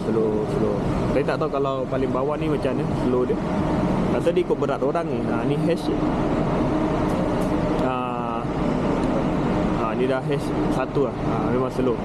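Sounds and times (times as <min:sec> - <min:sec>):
faint motor whine: 0:00.0 - 0:12.0.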